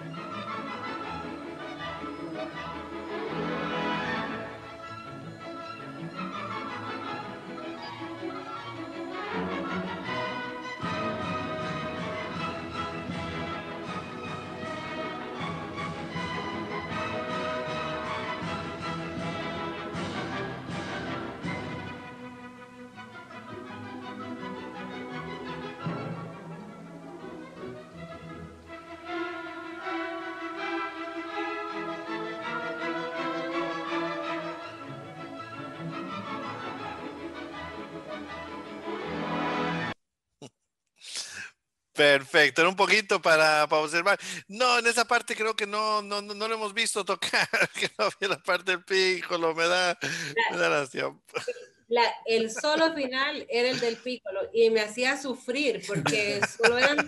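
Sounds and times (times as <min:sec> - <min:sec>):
symphony orchestra playing: 0:00.0 - 0:40.0, 0:55.9 - 0:57.0.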